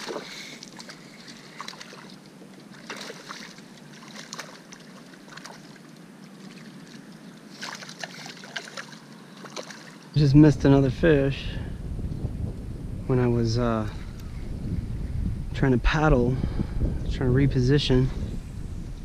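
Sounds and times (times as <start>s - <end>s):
water splashing and sloshing: 0.0s - 10.6s.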